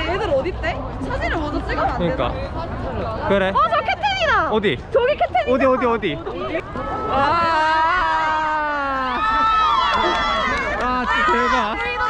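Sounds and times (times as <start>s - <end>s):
crowd chatter: 0.0s - 12.0s
young people exclaiming and laughing: 0.0s - 12.0s.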